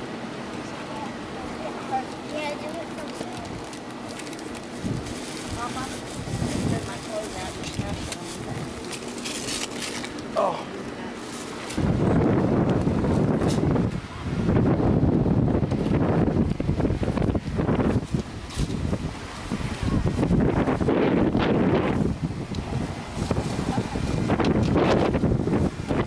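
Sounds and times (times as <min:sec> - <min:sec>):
wind buffeting microphone: 0:02.7 - 0:09.5, 0:11.5 - 0:26.0.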